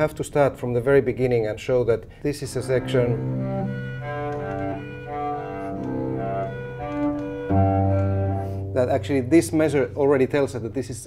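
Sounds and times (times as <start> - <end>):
bowed cello: 2.5 - 10.4.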